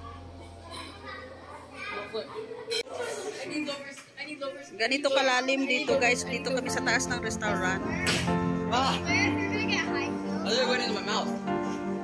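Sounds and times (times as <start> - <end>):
children talking and calling out: 0.0 - 6.2, 7.7 - 10.5.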